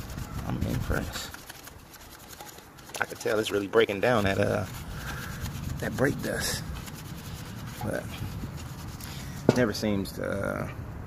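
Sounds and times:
brush scrubbing wet wheel: 0.0s - 9.8s.

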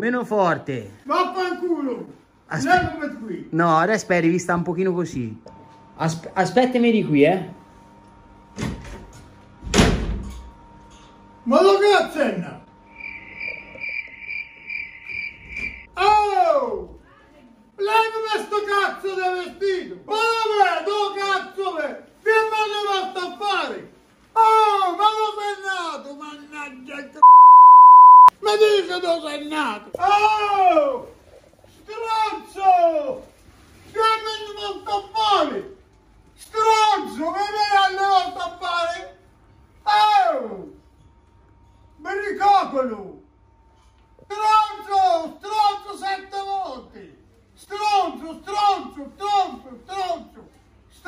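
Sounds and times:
cricket chirping: 12.7s - 15.9s
man shouting: 16.0s - 16.9s
censor bleep: 27.2s - 28.3s.

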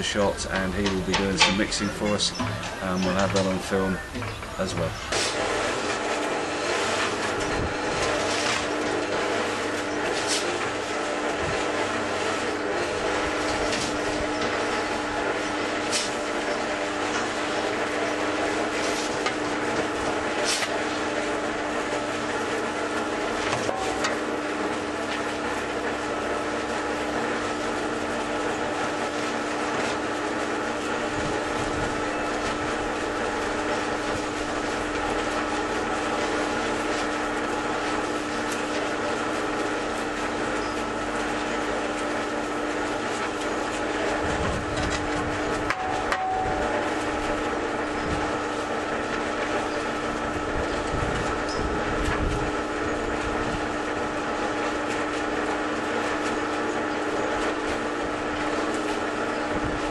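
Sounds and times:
cement mixer running: 0.0s - 59.9s.

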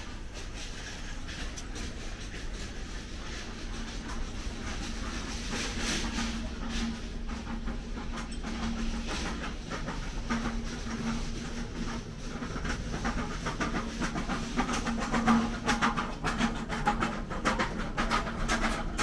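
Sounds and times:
background rattle and hiss: 0.0s - 19.0s.

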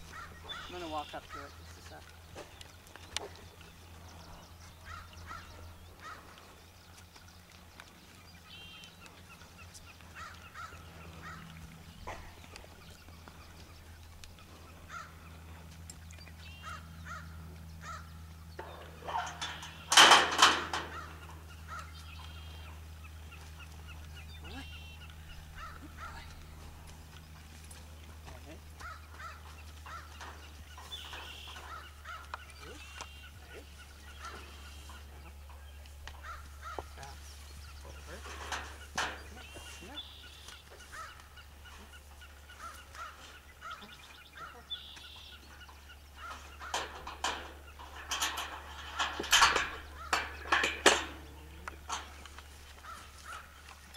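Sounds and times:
distant birds calling: 0.0s - 53.9s
metal gate rattling and clanking: 17.9s - 22.0s, 28.8s - 32.3s, 37.9s - 40.2s, 45.7s - 53.7s.

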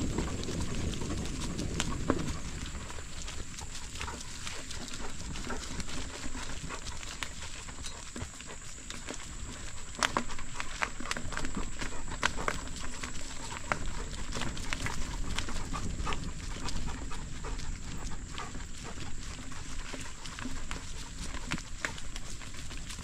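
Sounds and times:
bicycle rumble: 0.0s - 23.0s
dog panting: 0.0s - 23.0s.

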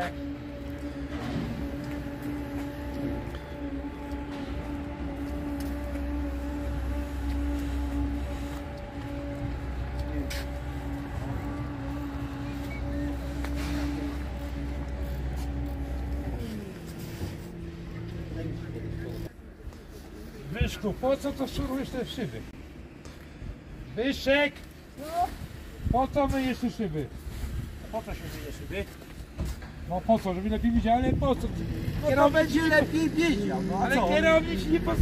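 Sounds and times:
deep rumble: 0.0s - 19.4s
machine running steadily: 0.0s - 35.0s.

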